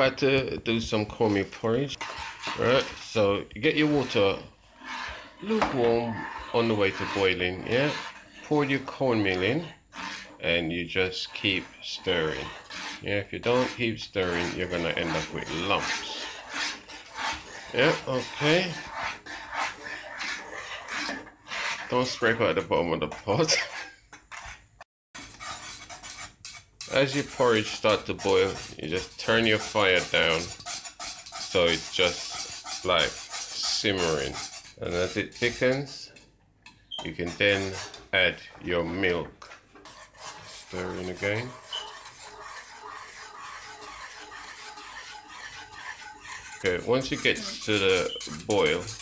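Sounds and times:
spoon scraping saucepan: 0.0 - 49.0
whisk stirring porridge in pot: 0.0 - 49.0.

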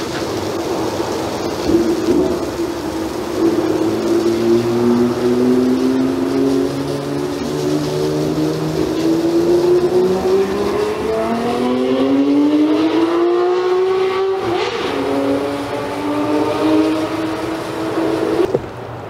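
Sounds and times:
pressure washer motor hum: 0.0 - 18.7
water spray hiss: 0.0 - 18.8.

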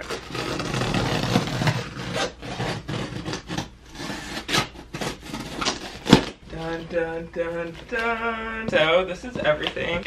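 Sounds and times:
scissors slitting packing tape: 0.0 - 6.3
tape ripping off cardboard: 0.0 - 6.4.

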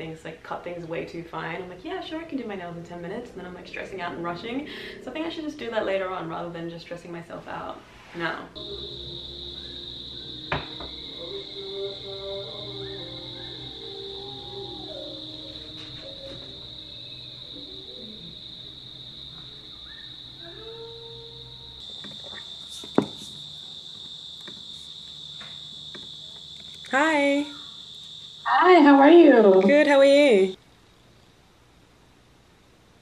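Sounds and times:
high-pitched insect trill: 8.6 - 30.6.

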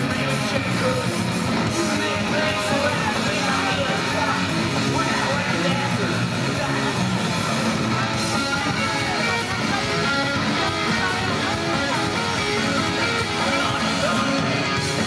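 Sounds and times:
punk rock band playing: 0.0 - 15.0.

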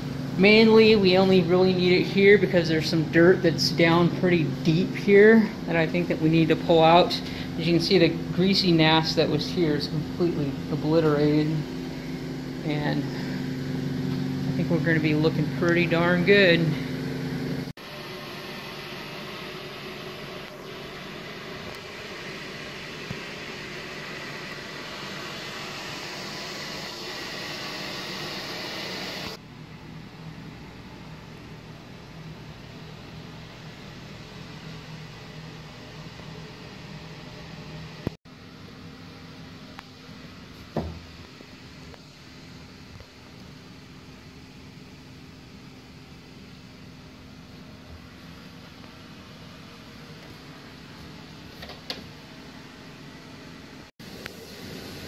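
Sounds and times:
carpet-cleaning unit humming: 0.0 - 55.0
short knock: 40.8 - 41.1.

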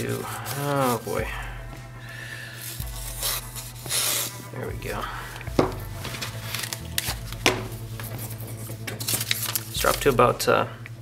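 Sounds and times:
knife slicing paper: 0.0 - 1.2, 2.6 - 4.5, 6.0 - 10.1
steady low hum: 0.0 - 11.0.

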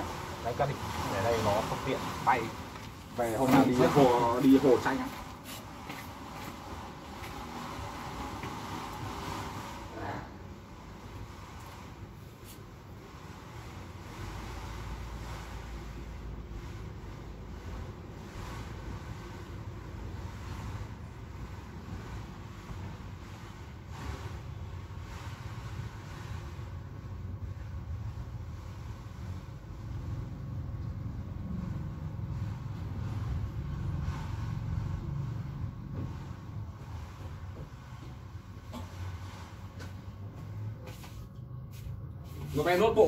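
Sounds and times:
low outdoor rumble: 0.0 - 43.0.

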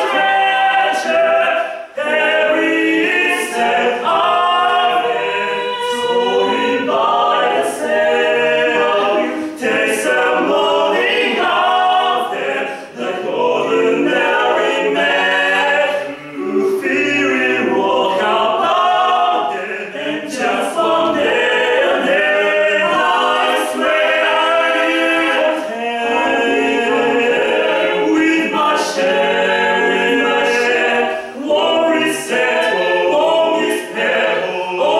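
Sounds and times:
male quartet singing in harmony: 0.0 - 34.9.

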